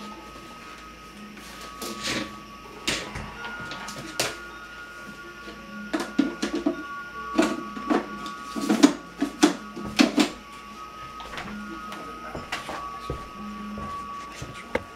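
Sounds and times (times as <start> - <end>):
faint steady high tone: 0.0 - 14.9.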